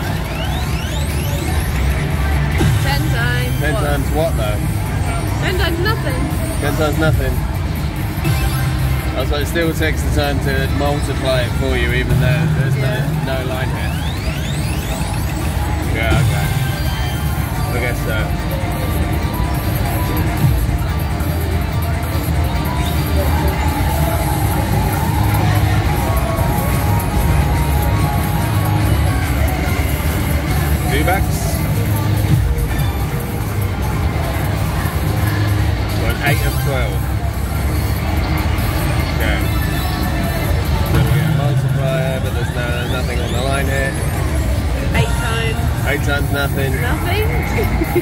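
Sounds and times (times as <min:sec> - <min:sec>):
casino background hum: 0:00.0 - 0:48.0
slot machine music and game sounds: 0:00.0 - 0:48.0
person talking indistinctly: 0:02.6 - 0:07.4.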